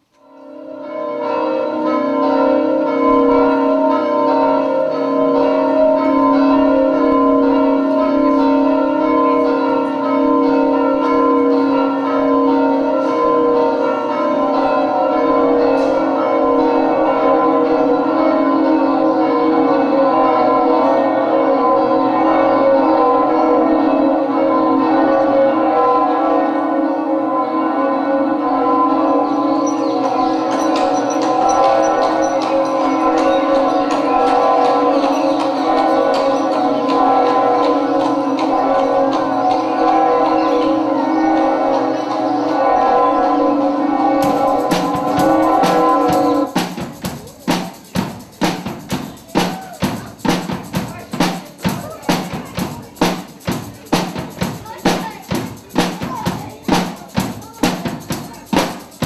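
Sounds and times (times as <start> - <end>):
bells ringing in a peal: 0.0 - 59.0.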